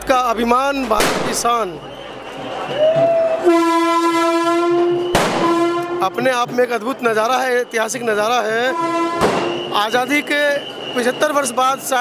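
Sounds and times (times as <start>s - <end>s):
train horn blast: 3.4s - 6.2s, 8.6s - 9.8s.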